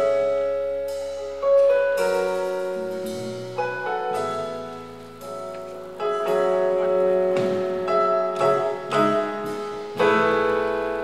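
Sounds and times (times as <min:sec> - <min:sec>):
piano-like keyboard chords: 0:00.0 - 0:11.0.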